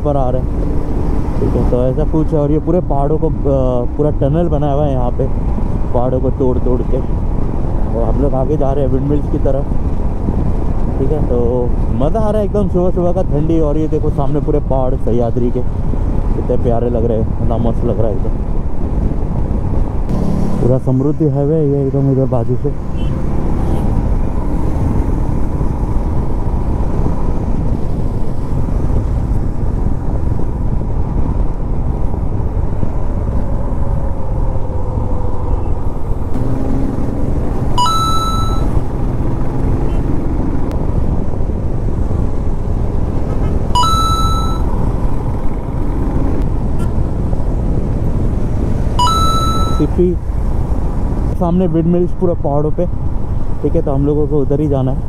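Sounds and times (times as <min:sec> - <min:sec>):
wind on microphone: 0:18.2 - 0:20.6, 0:22.7 - 0:37.8
motorcycle engine cruising: 0:18.5 - 0:51.3
short high-pitched electronic beep: 0:37.8 - 0:38.8, 0:43.8 - 0:44.7, 0:49.0 - 0:50.0.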